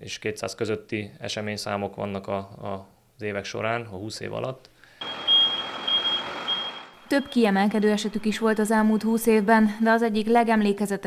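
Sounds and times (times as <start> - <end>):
high-pitched reversing alarm beeps: 5.0 - 9.3.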